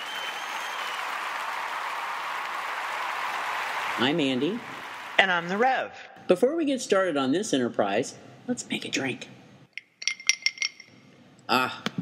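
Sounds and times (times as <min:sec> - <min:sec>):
whistle: 0:00.0 - 0:01.2
crowd applause: 0:00.0 - 0:05.6.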